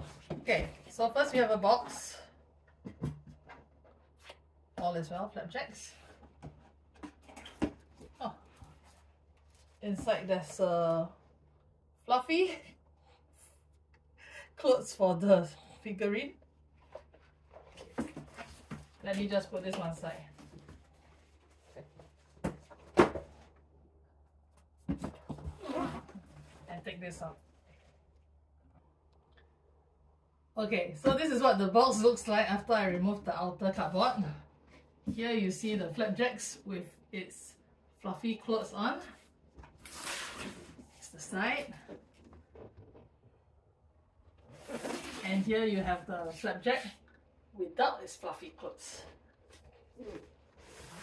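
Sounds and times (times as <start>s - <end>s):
cardboard rustling and scraping: 16.7s - 23.6s, 44.4s - 46.4s, 49.4s - 51.0s
cardboard box scraping on tile: 44.5s - 45.5s, 50.0s - 51.0s.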